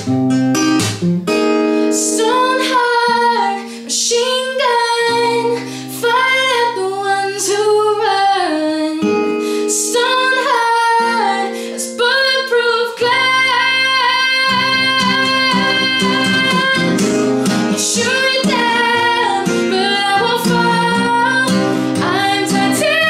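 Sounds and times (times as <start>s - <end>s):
acoustic guitar chords: 0.0s - 23.0s
woman singing: 1.9s - 23.0s.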